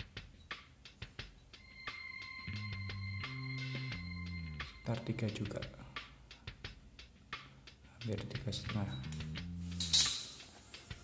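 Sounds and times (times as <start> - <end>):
soft guitar-like background music: 0.3 - 6.1, 8.0 - 11.0
steel ruler clinking on floor: 9.7 - 10.7.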